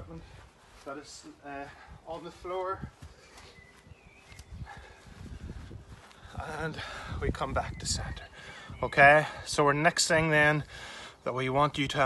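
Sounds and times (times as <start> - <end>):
footsteps jogging on grass: 0.0 - 7.7.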